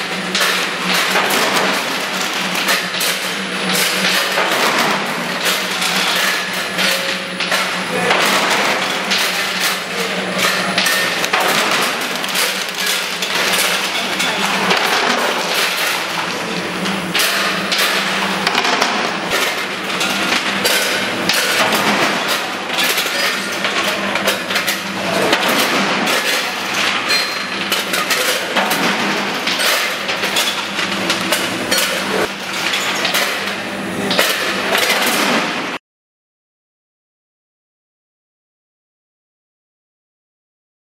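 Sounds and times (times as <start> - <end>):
machinery humming: 0.0 - 34.8.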